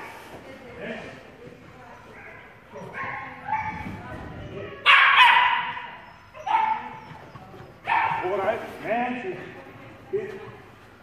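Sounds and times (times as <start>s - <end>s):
small dog barking: 4.8s - 6.9s
dog yipping: 4.8s - 8.4s.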